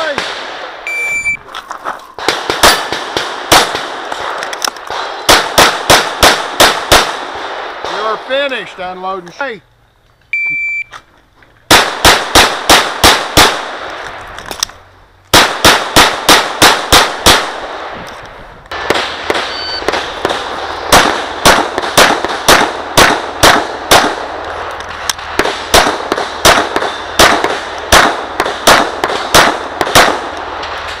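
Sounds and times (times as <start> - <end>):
pistol shots ringing: 2.2 - 8.1, 18.8 - 24.4, 25.1 - 30.4.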